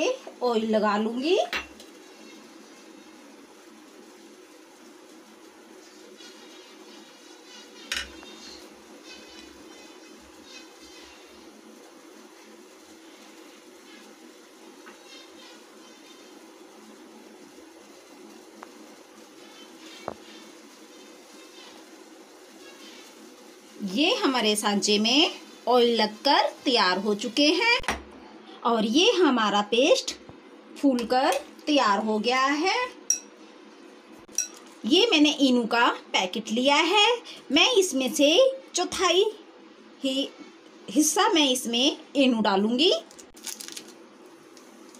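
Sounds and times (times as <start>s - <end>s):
metal spoon clinking glass bowl: 33.1s - 33.3s, 34.3s - 34.6s.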